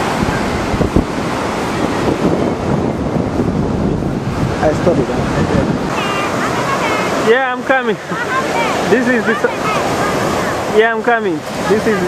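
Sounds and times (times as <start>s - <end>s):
wind on microphone: 0.0s - 7.3s
surf washing onto beach: 0.0s - 12.0s.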